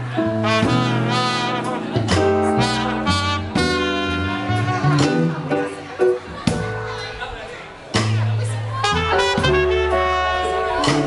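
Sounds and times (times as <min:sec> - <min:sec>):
live jazz band playing: 0:00.0 - 0:11.0.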